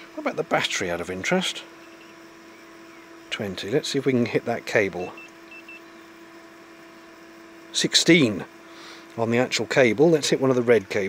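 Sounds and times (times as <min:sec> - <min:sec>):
thermometer short high beeps: 0:05.0 - 0:05.9.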